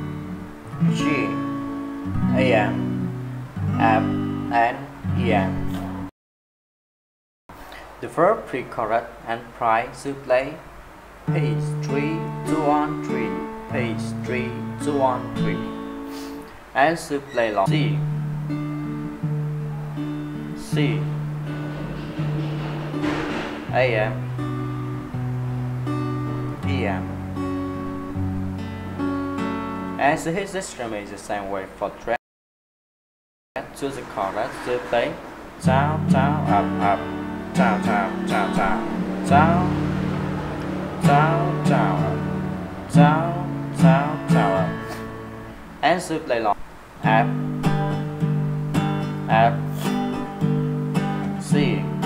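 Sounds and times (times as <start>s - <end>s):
acoustic guitar chords: 0.0s - 6.1s, 10.5s - 30.4s, 33.6s - 52.0s.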